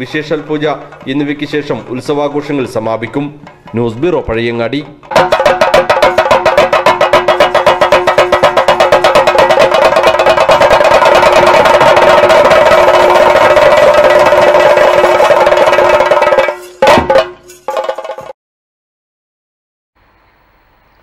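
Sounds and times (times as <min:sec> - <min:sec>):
temple drums in fast roll: 0:00.0 - 0:04.2, 0:05.0 - 0:18.4.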